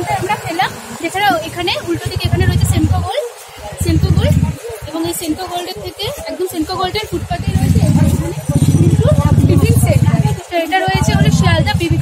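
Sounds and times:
low traffic rumble: 0:00.0 - 0:12.0
voices of passers-by: 0:00.0 - 0:12.0.

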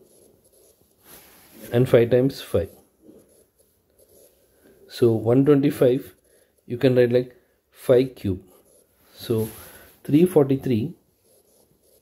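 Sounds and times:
stylus scratching on tablet: 0:00.0 - 0:12.0
man speaking: 0:01.6 - 0:02.8, 0:04.9 - 0:08.6, 0:09.2 - 0:11.0.

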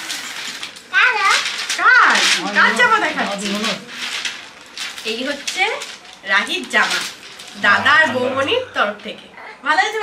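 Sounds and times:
lower voice: 0:07.6 - 0:08.8.

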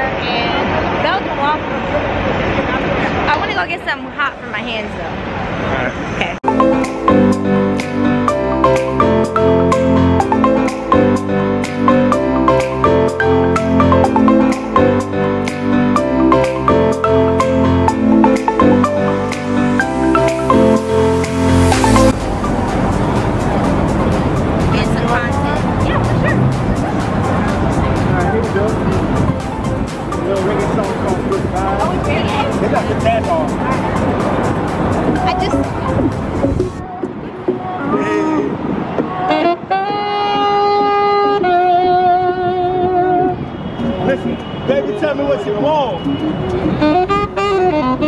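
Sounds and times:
city street noise: 0:00.0 - 0:48.0
saxophone playing: 0:06.4 - 0:26.7, 0:39.2 - 0:43.4, 0:46.2 - 0:48.0.

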